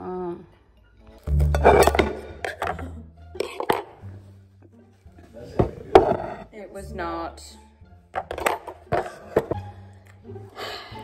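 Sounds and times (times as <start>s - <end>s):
background music with bass: 0.0s - 11.0s
cutlery clinking on plate: 1.4s - 2.8s, 3.4s - 4.0s.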